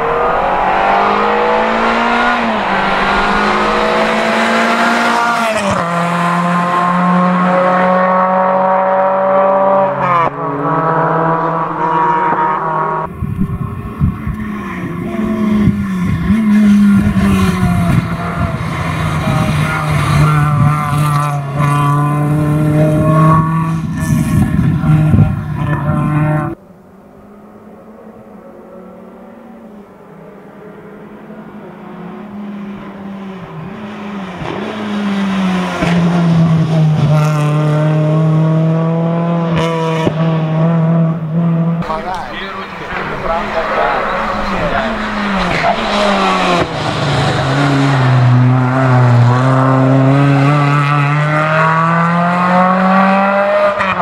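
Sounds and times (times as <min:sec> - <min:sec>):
car engine at full throttle: 0:00.0 - 0:26.6, 0:27.8 - 0:54.0.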